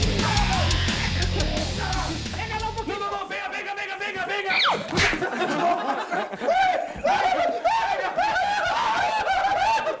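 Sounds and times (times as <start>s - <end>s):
man laughing: 4.9s - 10.0s.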